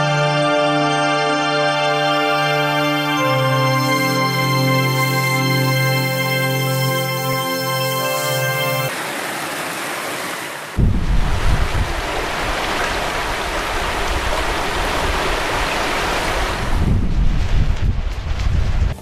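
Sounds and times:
stream rushing over rocks: 0:08.9 - 0:17.0.

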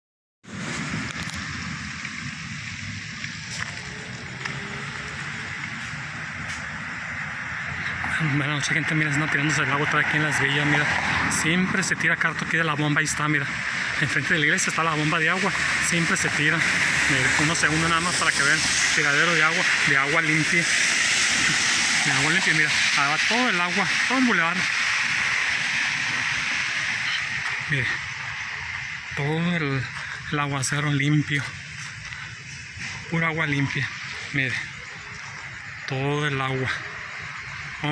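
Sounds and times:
low rumble: 0:00.5 - 0:08.8
water rushing down a street: 0:00.5 - 0:37.9.

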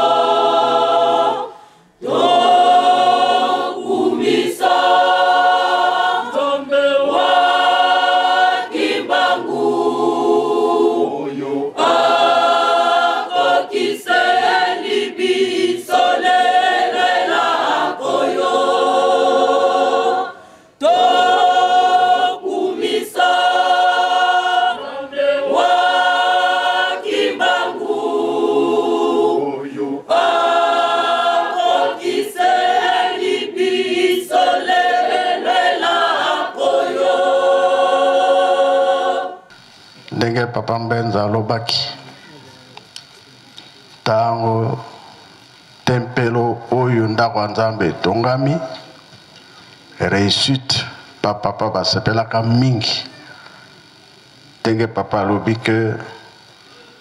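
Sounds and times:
choir singing: 0:00.0 - 0:39.6.

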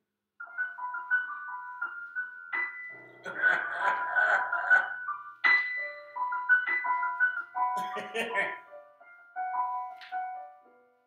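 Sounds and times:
chime-like keyboard music: 0:00.4 - 0:03.5, 0:04.9 - 0:11.0.

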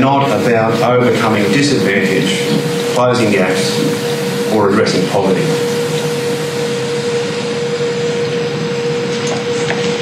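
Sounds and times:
mid-pitched hum: 0:00.0 - 0:10.0.

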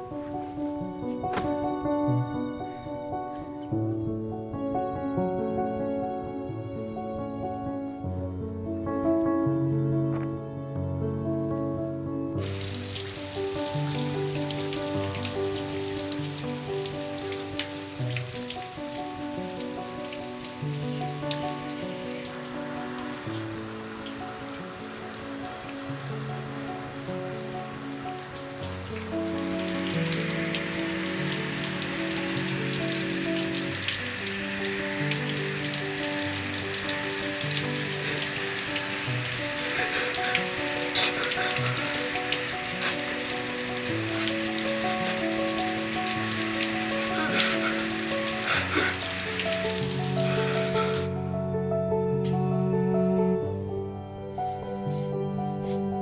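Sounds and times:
slow film score: 0:00.0 - 0:56.0
shower spray on skin and tile: 0:19.6 - 0:51.1.

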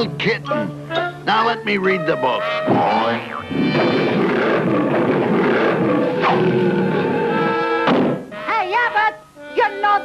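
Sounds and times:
music: 0:00.0 - 0:10.0
monster roaring: 0:03.8 - 0:07.3
door slamming shut: 0:07.8 - 0:08.2.

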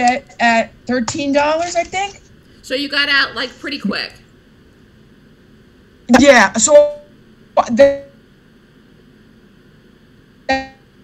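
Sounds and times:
faint hiss with low hum: 0:00.0 - 0:11.0.

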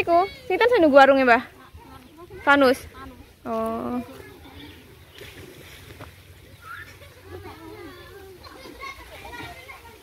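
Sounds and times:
children's voices playing: 0:00.0 - 0:05.4, 0:06.2 - 0:10.0.

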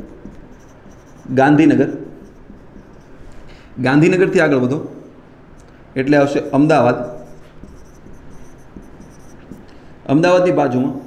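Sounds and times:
marker writing on whiteboard: 0:00.0 - 0:04.3, 0:06.0 - 0:11.0.

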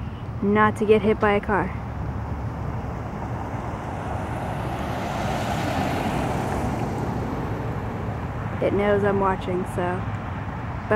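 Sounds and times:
vehicle passing by: 0:01.8 - 0:10.9.

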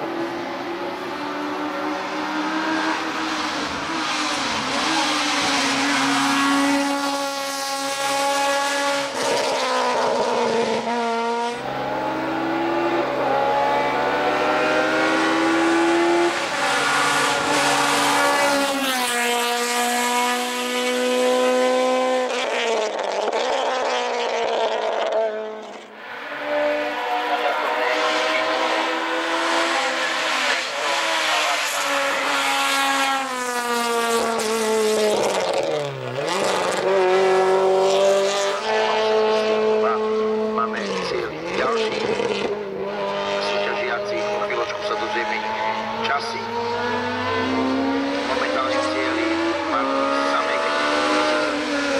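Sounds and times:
race car engine accelerating: 0:00.0 - 0:51.9.

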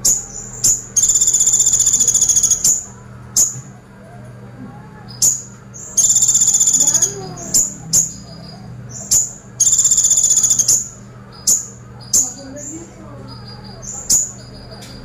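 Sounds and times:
bird rapid rattle song: 0:00.0 - 0:03.6, 0:05.1 - 0:15.0
sharp bird chip notes: 0:00.0 - 0:03.7, 0:05.1 - 0:15.0.

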